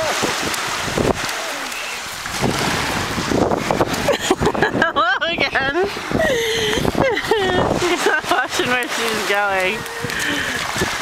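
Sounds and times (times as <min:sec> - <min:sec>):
surf: 0:00.0 - 0:11.0
wind noise on microphone: 0:00.0 - 0:11.0.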